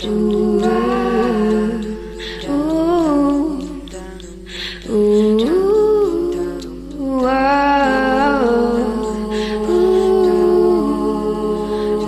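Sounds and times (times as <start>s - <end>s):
person humming a melody: 0.0s - 12.0s.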